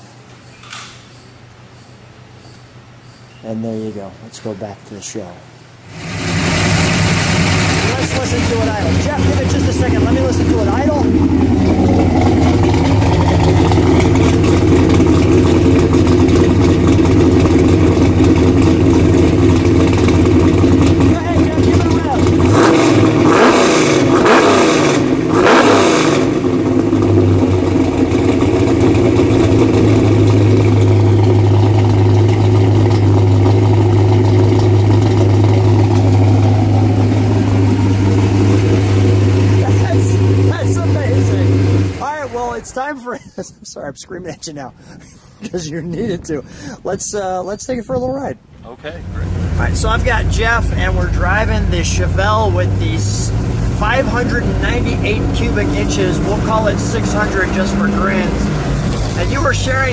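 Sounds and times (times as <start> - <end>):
engine idling and revving: 5.9 - 42.9, 48.8 - 59.9.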